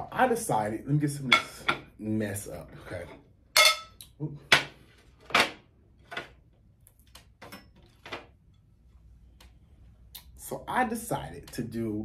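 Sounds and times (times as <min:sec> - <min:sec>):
dinner plates clinking: 0:03.6 - 0:06.3.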